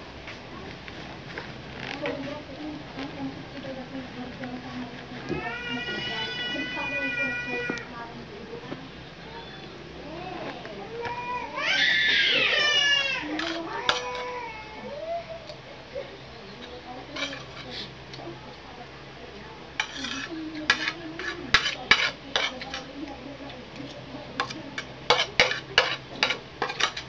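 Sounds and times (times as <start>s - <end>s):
metal spoon scraping ceramic plate: 17.1s - 17.8s, 19.8s - 22.9s, 24.4s - 27.0s.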